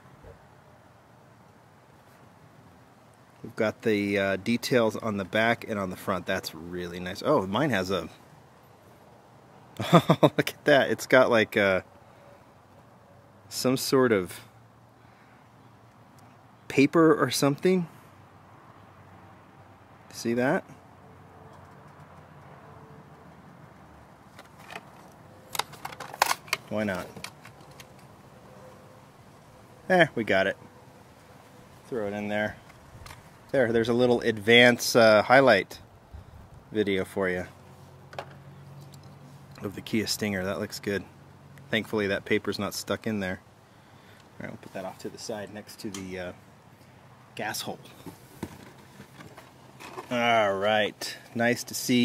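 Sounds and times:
steady low hiss: 0:00.0 - 0:21.0, 0:23.1 - 0:52.0
faint background hum: 0:00.0 - 0:52.0.

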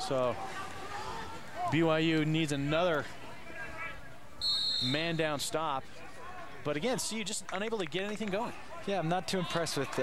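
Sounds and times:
referee's whistle blast: 0:04.4 - 0:05.2.

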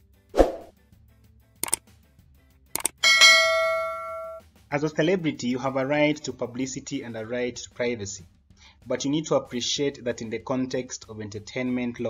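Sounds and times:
mouse click sound effect: 0:02.8 - 0:03.0
notification bell ding: 0:03.0 - 0:04.4.

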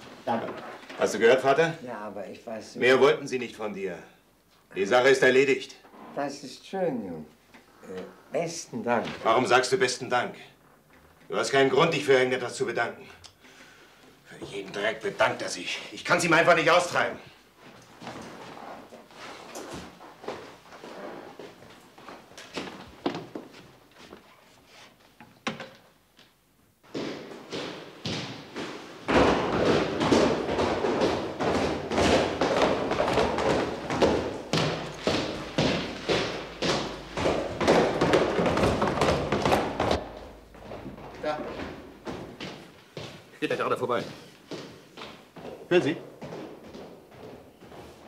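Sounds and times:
heavy boot footsteps on stairs: 0:26.8 - 0:48.0.

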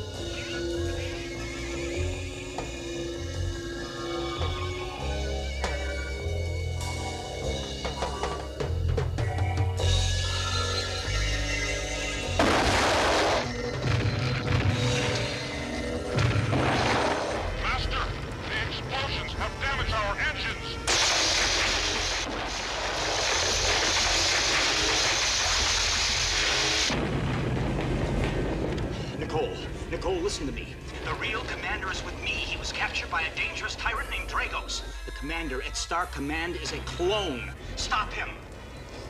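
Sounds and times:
booming blasts: 0:12.2 - 0:20.1, 0:20.8 - 0:33.6
rushing noise: 0:20.9 - 0:33.1.

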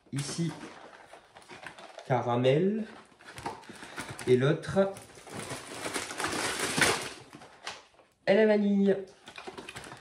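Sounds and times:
packaging rustling and knocking: 0:02.8 - 0:07.9, 0:09.2 - 0:10.0.

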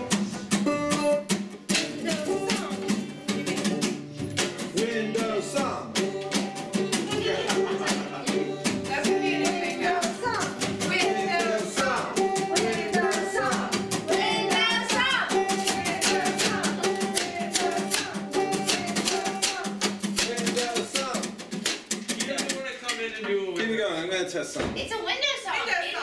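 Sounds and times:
person singing: 0:00.0 - 0:21.3
banjo strumming: 0:00.0 - 0:23.1
percussion: 0:00.0 - 0:25.2.

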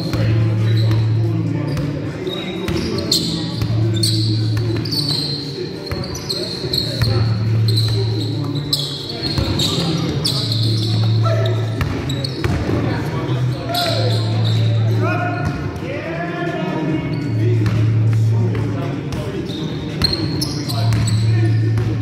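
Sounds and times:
sneakers squeaking on floor: 0:00.0 - 0:15.8, 0:16.9 - 0:22.0
players' voices: 0:00.0 - 0:22.0.

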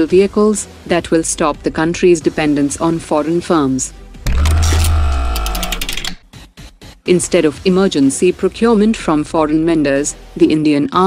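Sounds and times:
deep bass hit: 0:04.2 - 0:05.7
held synth tones: 0:04.3 - 0:06.2
rattling run of clicks: 0:04.3 - 0:06.2.

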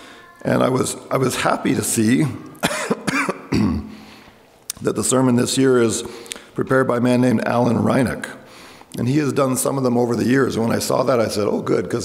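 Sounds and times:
man coughing: 0:02.6 - 0:04.0.

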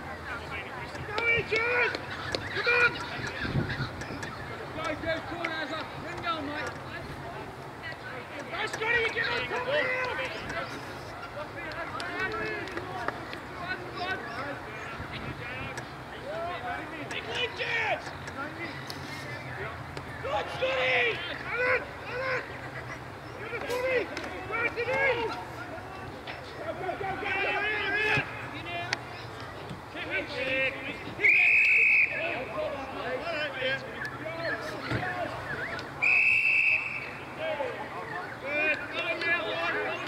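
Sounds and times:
people shouting: 0:01.1 - 0:03.5, 0:20.2 - 0:22.6, 0:23.4 - 0:25.8
whistle blasts: 0:31.2 - 0:32.3, 0:35.4 - 0:37.3.

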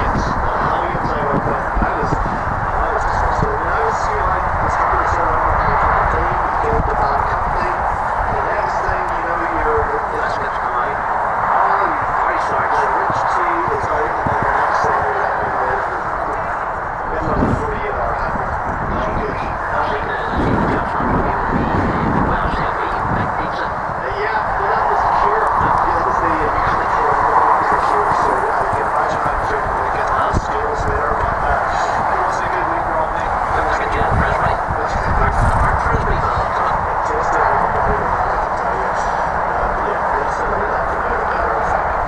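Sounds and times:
constant rushing noise: 0:00.0 - 0:42.0
indistinct voices: 0:00.0 - 0:42.0.

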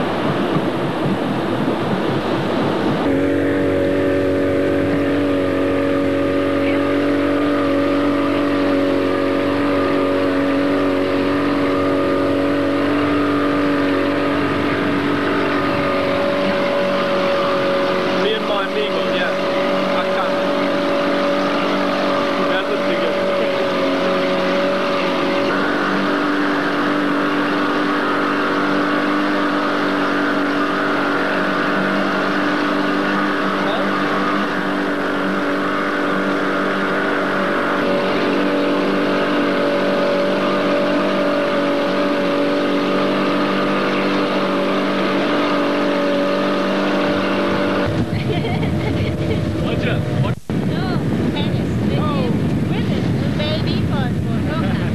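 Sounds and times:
low rough rush: 0:00.0 - 0:54.9
motorboat engine droning: 0:00.0 - 0:54.9.

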